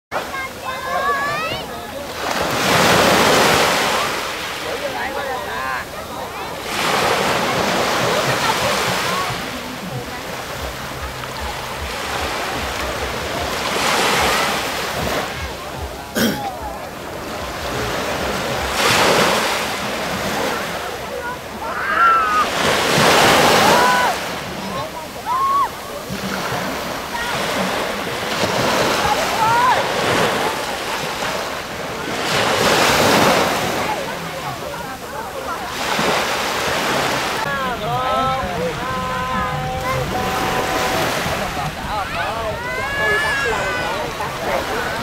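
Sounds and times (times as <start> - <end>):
small waves breaking on beach: 0.1 - 45.0.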